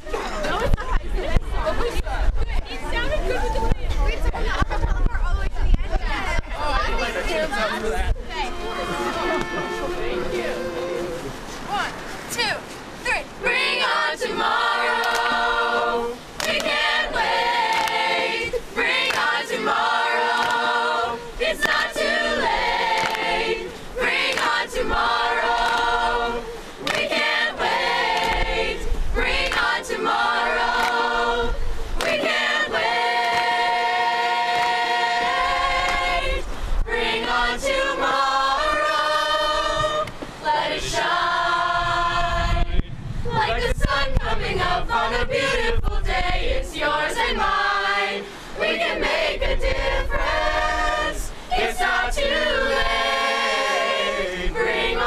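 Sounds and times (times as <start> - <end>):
choir of young voices singing: 13.4 - 55.0.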